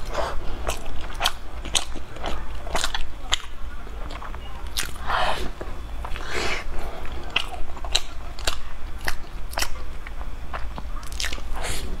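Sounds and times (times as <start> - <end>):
chewing bread roll: 0.0 - 12.0.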